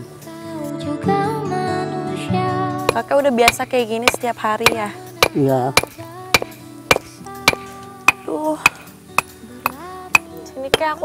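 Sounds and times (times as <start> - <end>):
background music: 0.0 - 11.0
hammer striking stone: 2.9 - 11.0.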